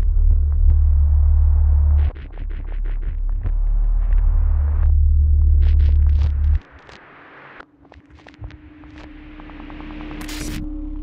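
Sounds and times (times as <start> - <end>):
deep steady rumble: 0.0 - 2.0, 3.0 - 6.6.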